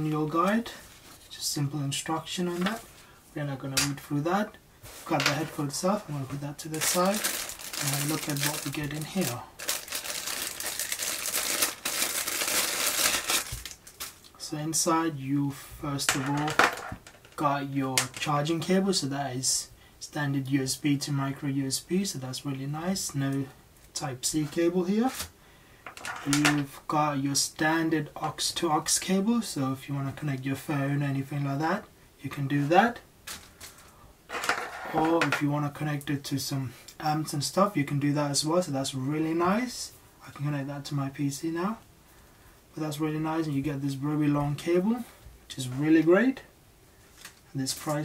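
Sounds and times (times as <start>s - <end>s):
man talking: 0.0s - 9.6s, 14.4s - 16.7s, 17.4s - 25.3s, 26.2s - 33.0s, 34.9s - 41.9s, 42.7s - 46.5s, 47.5s - 48.0s
cable handling noise: 4.9s - 14.4s
plastic bag crinkling: 5.0s - 14.4s.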